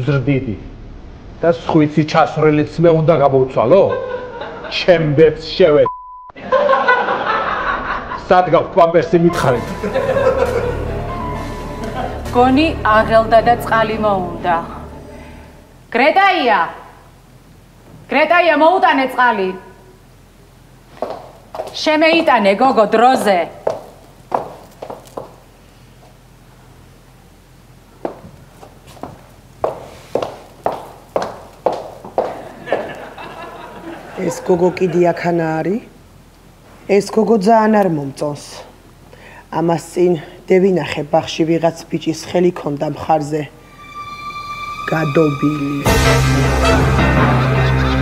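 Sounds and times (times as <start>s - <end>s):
chuckling laughter: 6.4s - 8.3s, 9.6s - 11.0s, 32.5s - 34.7s, 47.2s - 48.0s
man talking: 8.2s - 9.8s.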